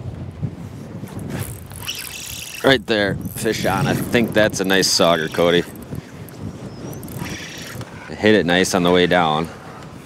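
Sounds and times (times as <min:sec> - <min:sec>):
wind and water noise: 0:00.0 - 0:10.0.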